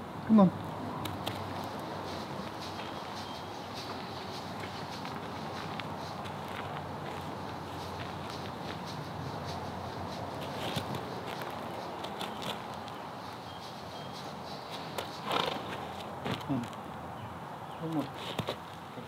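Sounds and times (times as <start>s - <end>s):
outdoor background hiss: 0.0s - 19.0s
footsteps and hooves on gravel: 1.0s - 17.0s, 17.9s - 18.8s.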